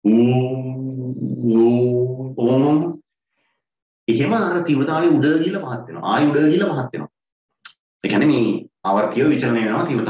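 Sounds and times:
man chanting on one pitch: 0.0s - 3.0s.

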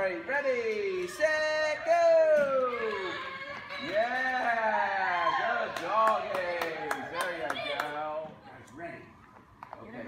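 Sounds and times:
hand claps: 5.7s - 8.0s.

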